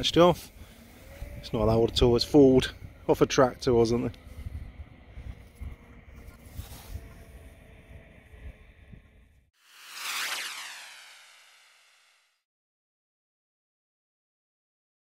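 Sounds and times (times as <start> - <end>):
wind on microphone: 4.2 - 9.3
swooshing transition effect: 9.6 - 12.3.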